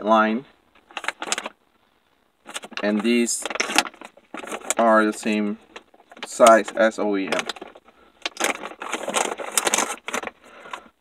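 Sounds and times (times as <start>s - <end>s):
rubber parts rustling and clicking: 0.6s - 1.8s, 2.4s - 11.0s.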